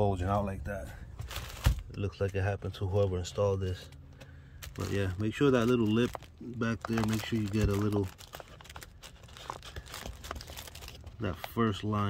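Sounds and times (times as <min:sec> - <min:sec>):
air filter crinkling and rustling: 0:00.0 - 0:12.0.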